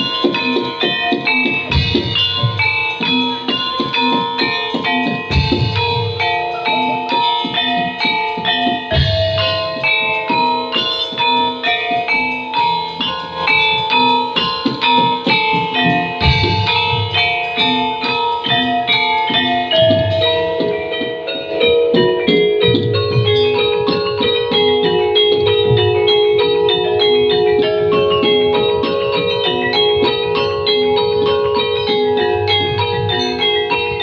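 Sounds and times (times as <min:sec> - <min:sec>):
metallophones struck with mallets: 0:00.0 - 0:34.0.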